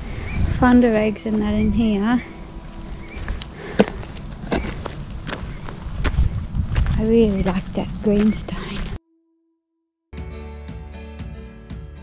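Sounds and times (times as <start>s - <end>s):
footsteps on loose gravel: 2.6s - 9.0s.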